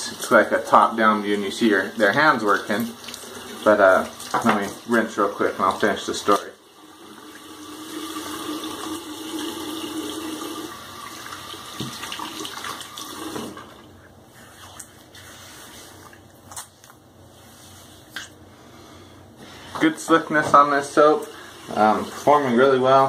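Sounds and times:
sink tap running: 0:00.0 - 0:13.9, 0:20.1 - 0:23.0.

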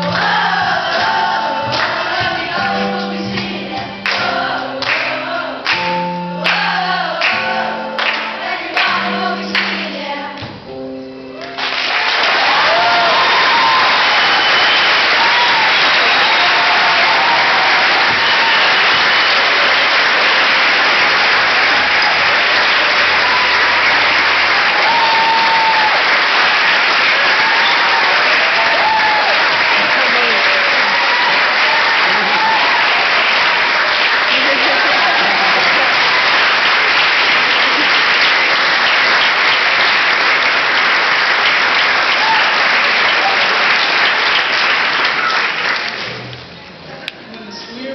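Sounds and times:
audience applauding: 0:00.0 - 0:02.8, 0:11.4 - 0:46.4
audience shouts and cheers: 0:11.4 - 0:46.0.

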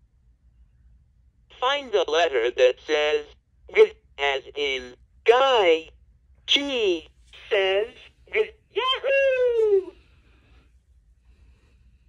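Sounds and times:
toy recorded voice: 0:06.6 - 0:09.9.

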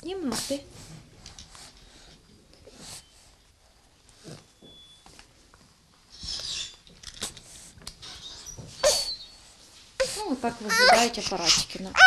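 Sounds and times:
infant whimpering and fussing: 0:10.0 - 0:12.0
infant crying loudly: 0:10.7 - 0:12.0.

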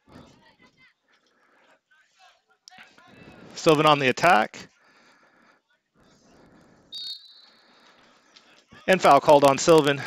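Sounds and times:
referee's whistle blast: 0:06.9 - 0:07.6.

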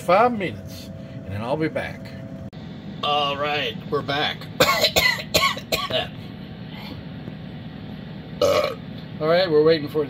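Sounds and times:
air fryer fan humming: 0:00.0 - 0:10.0
man coughing: 0:04.6 - 0:06.2.

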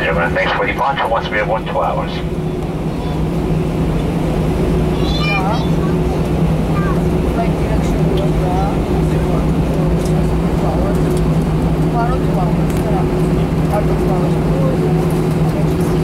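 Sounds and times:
constant engine tones: 0:00.0 - 0:16.0
faint passenger voices: 0:00.0 - 0:16.0
jet engines humming: 0:00.0 - 0:16.0.

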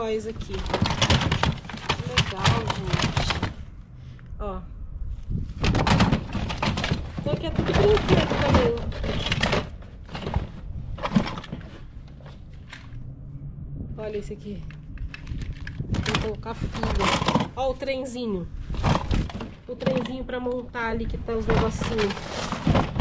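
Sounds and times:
plastic toys clattering in a box: 0:00.0 - 0:03.6, 0:05.6 - 0:12.9, 0:15.1 - 0:17.8, 0:18.7 - 0:23.0
scattered clicks: 0:14.5 - 0:17.6.

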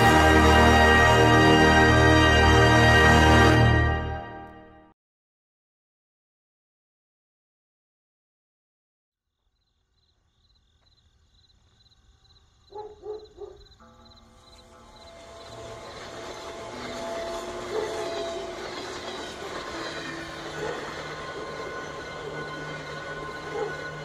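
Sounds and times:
passing train rumble: 0:00.0 - 0:04.2, 0:13.8 - 0:24.0.

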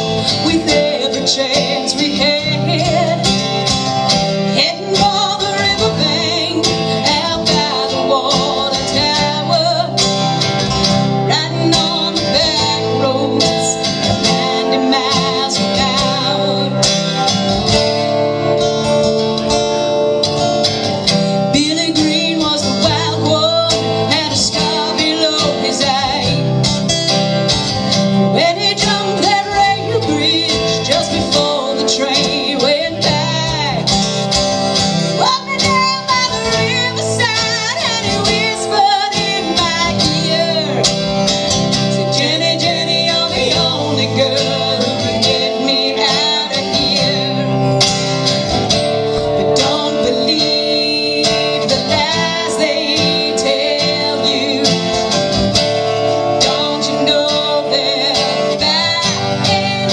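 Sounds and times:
woman singing: 0:00.0 - 0:17.4, 0:21.2 - 0:26.8, 0:28.2 - 0:34.3, 0:35.0 - 0:41.1, 0:41.8 - 0:47.9, 0:49.2 - 0:55.4, 0:56.2 - 0:59.9
acoustic guitar: 0:00.0 - 0:59.9
resonator guitar: 0:00.0 - 0:59.9.

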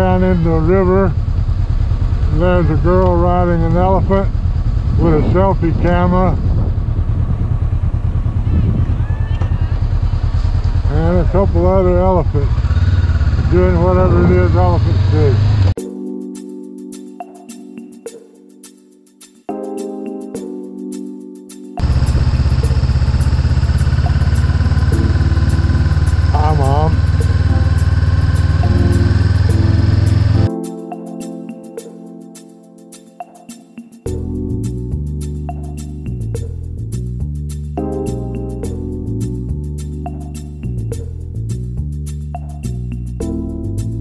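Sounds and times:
motorcycle engine running: 0:00.0 - 0:15.8, 0:21.8 - 0:30.5.

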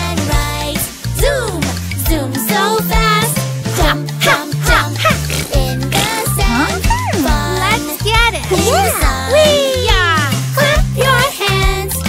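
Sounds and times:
children's song with vocals: 0:00.0 - 0:12.0
bouncy bass line: 0:03.0 - 0:12.0.

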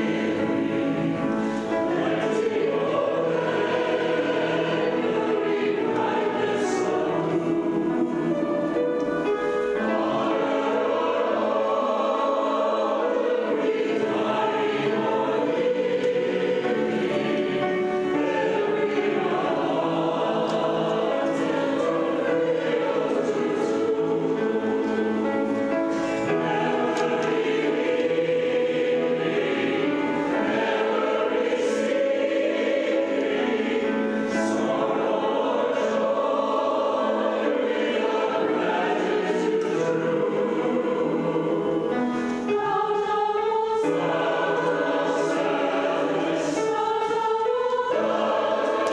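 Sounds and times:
church choir singing: 0:00.0 - 0:48.9.

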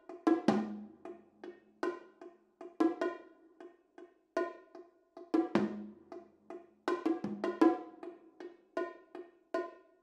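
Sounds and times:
bongos and tom-toms struck: 0:00.0 - 0:03.8, 0:04.4 - 0:10.0.

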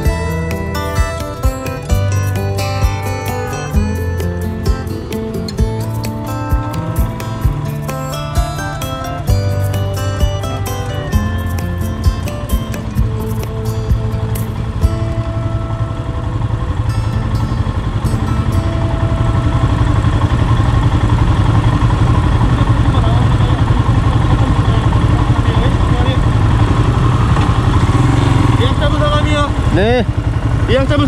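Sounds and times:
background music: 0:00.0 - 0:21.8
motorcycle engine idling: 0:00.0 - 0:31.0.

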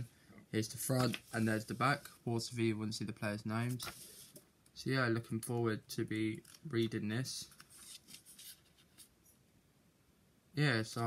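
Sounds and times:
paper rustling: 0:00.8 - 0:02.1, 0:03.6 - 0:04.4, 0:07.5 - 0:09.1.

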